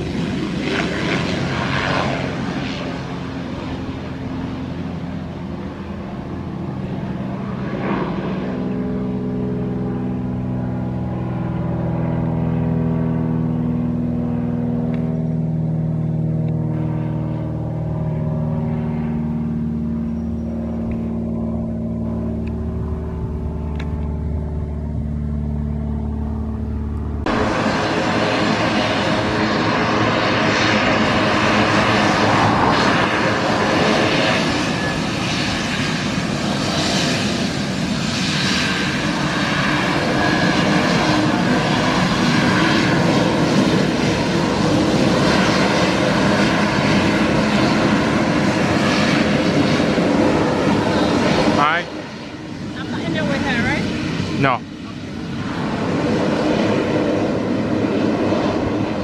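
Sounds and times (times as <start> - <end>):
aircraft engines droning: 0.0 - 59.0
high engine whine: 0.0 - 59.0
turboprop engines and propellers: 0.0 - 59.0.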